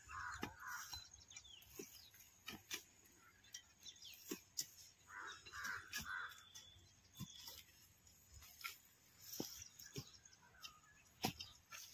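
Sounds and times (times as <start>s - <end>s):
hoes digging into dry soil: 0.0s - 11.9s
crow cawing: 0.1s - 0.9s, 5.1s - 6.5s.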